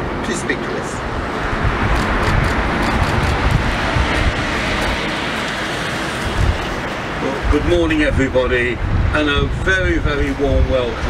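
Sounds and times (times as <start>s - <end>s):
wind buffeting microphone: 1.0s - 11.0s.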